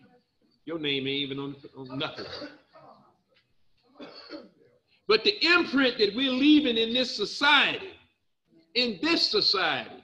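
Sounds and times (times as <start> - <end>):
throat clearing: 1.9 - 3.1, 3.9 - 4.8.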